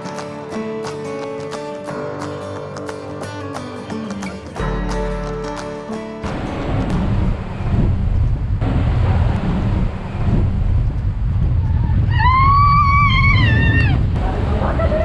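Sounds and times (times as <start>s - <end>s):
log flume boat rumble: 6.2s - 15.0s
rider screaming: 11.8s - 14.0s.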